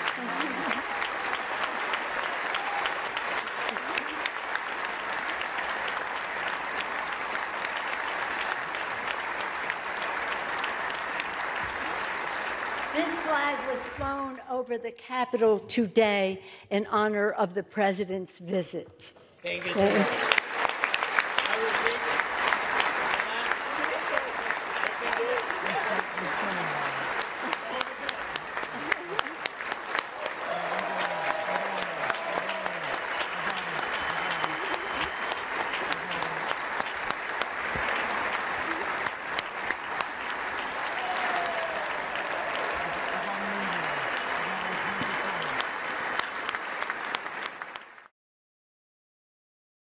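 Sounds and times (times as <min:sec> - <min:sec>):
audience applauding: 0:00.0 - 0:14.0, 0:19.5 - 0:48.1.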